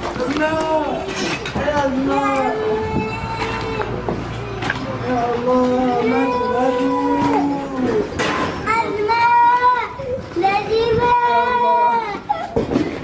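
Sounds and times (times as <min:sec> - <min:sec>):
child wailing: 0:02.1 - 0:04.0, 0:05.9 - 0:07.8, 0:10.8 - 0:12.6.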